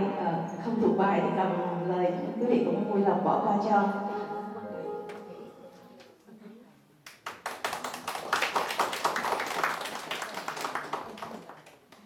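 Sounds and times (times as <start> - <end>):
audience applauding: 7.1 - 12.0.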